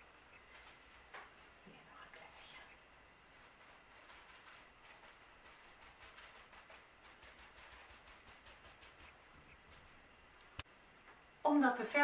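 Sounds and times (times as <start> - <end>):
paper dabbing on concrete pot: 3.3 - 10.0.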